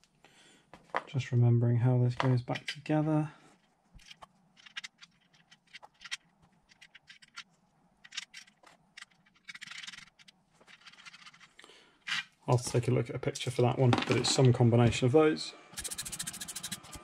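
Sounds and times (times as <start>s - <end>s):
metal part clicks and scrapes: 4.0s - 12.4s.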